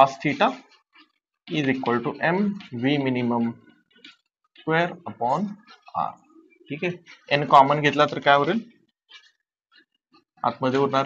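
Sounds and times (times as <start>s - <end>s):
man speaking: 0.0s - 0.7s, 1.5s - 3.8s, 4.6s - 8.8s, 10.4s - 11.0s.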